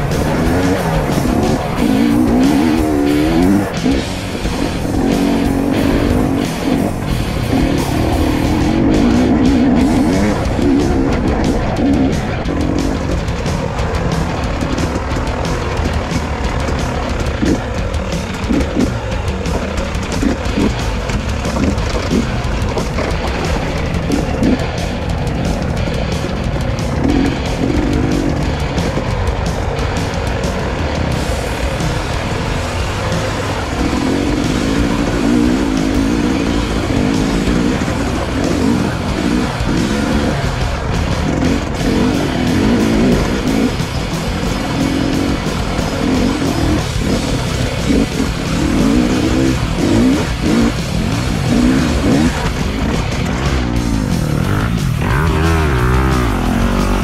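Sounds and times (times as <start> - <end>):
motorcycle engine revving: 0.0 - 57.0
music: 0.0 - 57.0.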